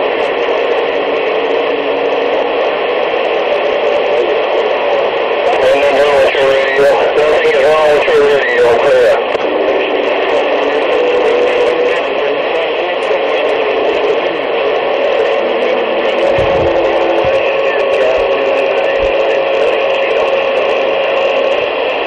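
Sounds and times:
radio static hiss: 0.0 - 22.0.

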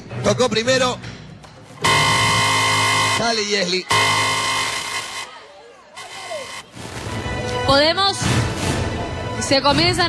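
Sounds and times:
electronic buzzer tone: 1.8 - 5.3, 6.0 - 6.6
faint voices: 3.8 - 6.7.

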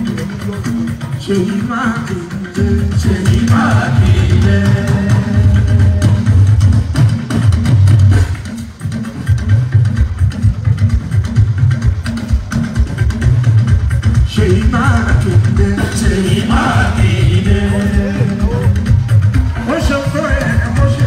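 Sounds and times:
live band with heavy drums: 0.0 - 21.0.

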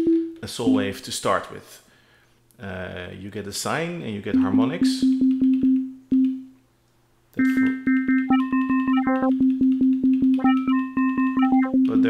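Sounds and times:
synth repeating sine-wave note: 7.4 - 11.9.

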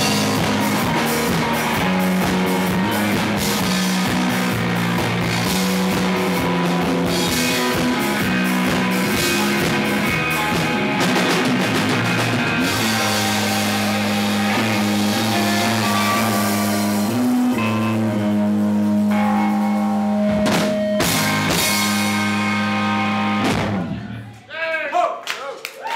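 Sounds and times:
rock band playing: 0.0 - 24.4
loud drum hits: 23.4 - 24.0.

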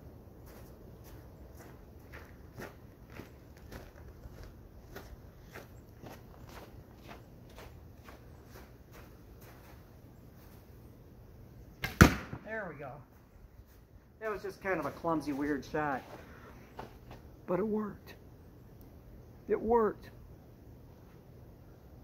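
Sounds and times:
footsteps crunching in snow: 0.4 - 10.8, 13.1 - 17.2
arrow shot from bow crack: 11.8 - 12.5.

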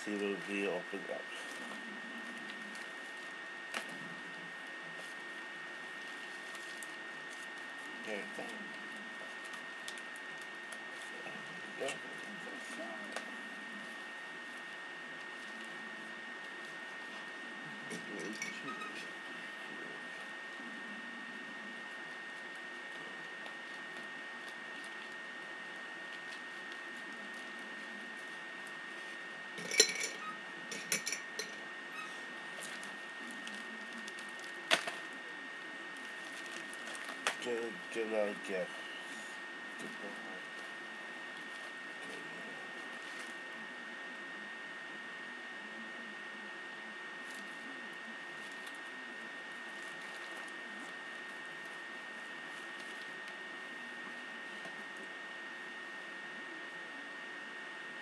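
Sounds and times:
steady high whine: 0.0 - 58.0
packaging handling noise: 32.4 - 35.2, 35.9 - 43.4.

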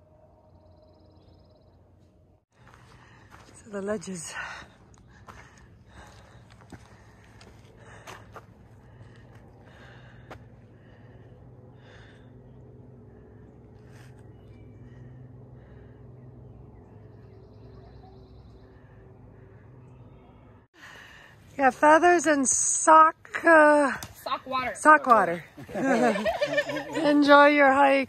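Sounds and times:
faint low hum: 0.0 - 22.2.

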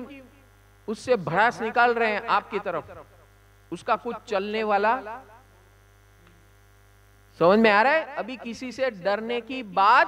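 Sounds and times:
electrical mains hum: 0.0 - 10.0
man's voice: 7.4 - 10.0.

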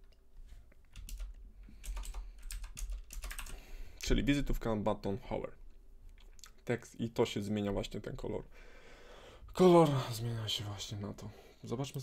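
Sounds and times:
keyboard typing clicks: 1.0 - 3.6.

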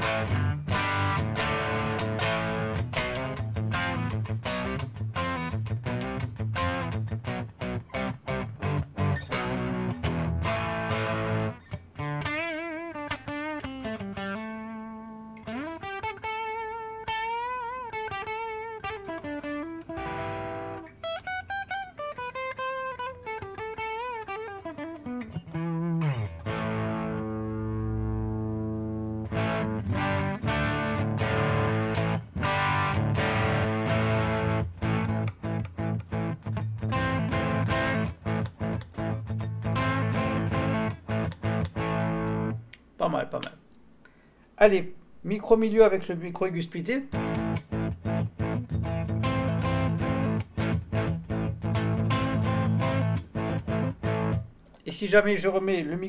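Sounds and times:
overdriven electric guitar: 0.0 - 42.8, 47.1 - 54.9.

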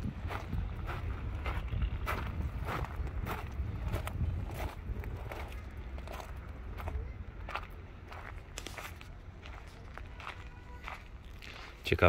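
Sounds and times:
low steady rumble: 0.0 - 10.2
footsteps on dirt path: 0.0 - 12.0.

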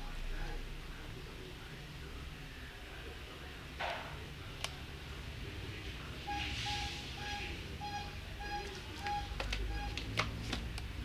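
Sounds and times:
short electronic beeps: 6.2 - 10.2.

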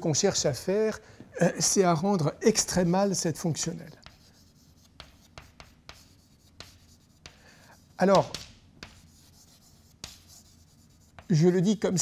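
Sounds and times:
chalk scratching on blackboard: 2.6 - 12.0
chalk tapping on board: 3.6 - 12.0.

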